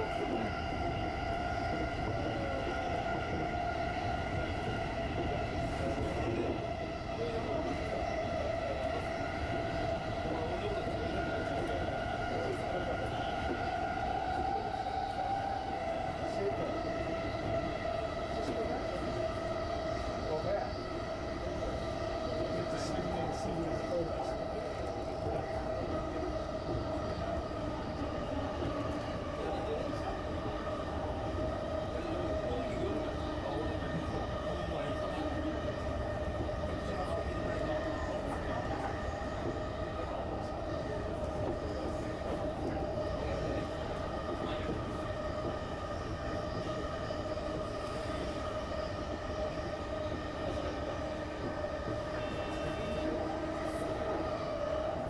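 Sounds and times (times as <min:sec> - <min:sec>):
electric train rumbling: 0:00.0 - 0:55.0
steady train hum: 0:00.0 - 0:55.0.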